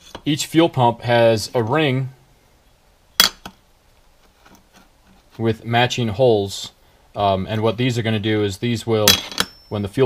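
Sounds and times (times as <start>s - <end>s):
metal ring clinking on metal sheet: 9.0s - 10.0s.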